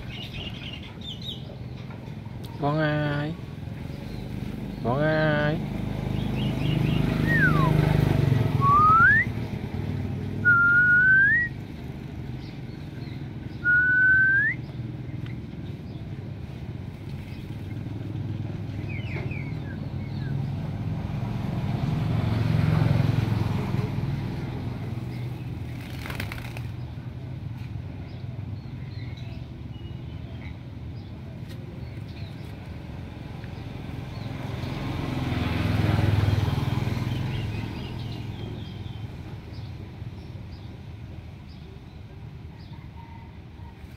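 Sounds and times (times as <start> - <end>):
myna bird whistling: 6.4 - 7.8, 8.6 - 9.4, 10.4 - 11.6, 13.5 - 14.8.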